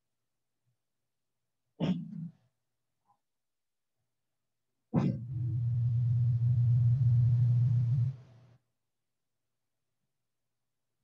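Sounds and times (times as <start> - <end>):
low hum with faint hiss: 5.2 - 8.6.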